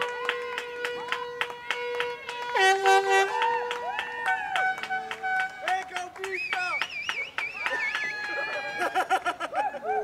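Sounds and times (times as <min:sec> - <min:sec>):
horns blowing long notes: 0:00.0 - 0:06.8, 0:07.6 - 0:09.2
hand clapping: 0:00.0 - 0:09.3.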